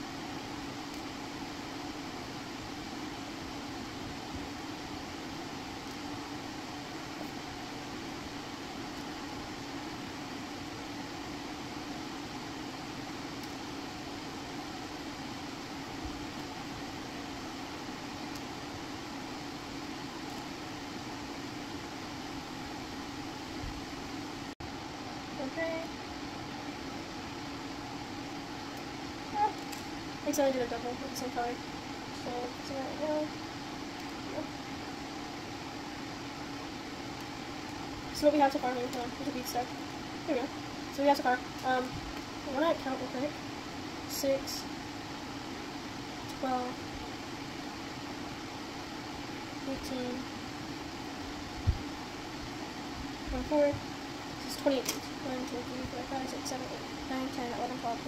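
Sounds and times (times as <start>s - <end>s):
steady mechanical hum: 0.0s - 58.0s.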